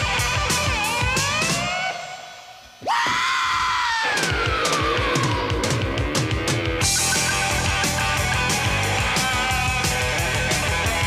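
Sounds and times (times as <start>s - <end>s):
rock music: 0.0s - 2.4s, 4.2s - 11.0s
man screaming: 2.8s - 5.6s.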